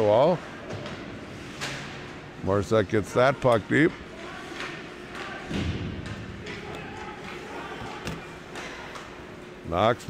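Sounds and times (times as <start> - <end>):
hockey sticks and puck clacking: 3.4 - 9.3.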